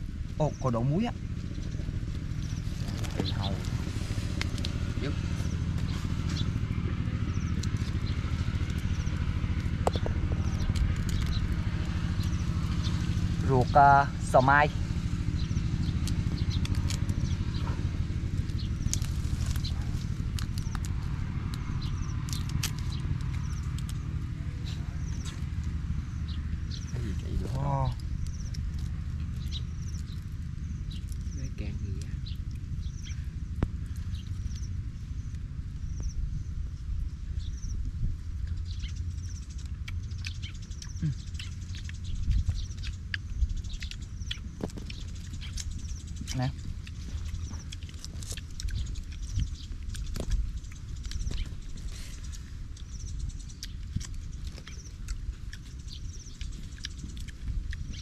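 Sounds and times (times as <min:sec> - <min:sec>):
wind rumbling on microphone: 0:00.0 - 0:58.0
shells cracking as peeled by hand: 0:15.9 - 0:24.3, 0:39.5 - 0:58.0.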